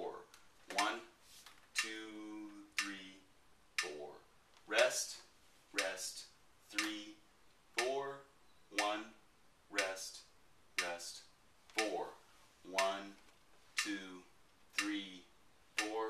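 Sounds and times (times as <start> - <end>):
man counting aloud: 0.0 - 1.2, 1.8 - 16.0
sharp tick: 2.8 - 3.0, 3.8 - 4.0, 5.8 - 6.1, 6.7 - 7.1, 7.8 - 8.0, 9.8 - 10.2, 10.8 - 12.0, 13.8 - 14.0, 14.8 - 15.1, 15.8 - 16.0.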